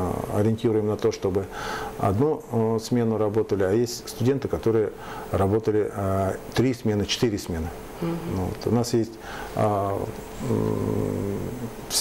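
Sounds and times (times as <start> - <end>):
man saying uhh: 8.0 - 8.5, 9.8 - 12.0.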